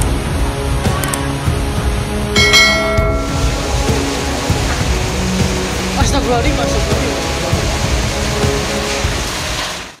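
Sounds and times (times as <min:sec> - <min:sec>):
heavy rain: 0:00.0 - 0:10.0
music: 0:00.0 - 0:10.0.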